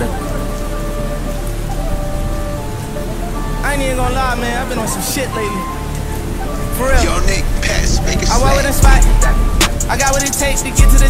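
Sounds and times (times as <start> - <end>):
soft held synth notes: 0.0 - 11.0
steady rain: 0.0 - 11.0.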